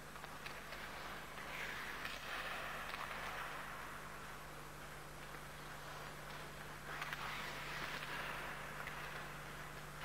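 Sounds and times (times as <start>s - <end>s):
low electrical hum: 0.0s - 10.0s
skates scraping on ice: 0.2s - 4.0s, 5.6s - 10.0s.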